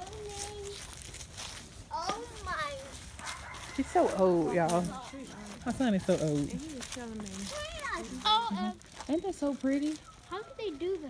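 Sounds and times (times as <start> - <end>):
small dog yelping: 3.2 - 4.2.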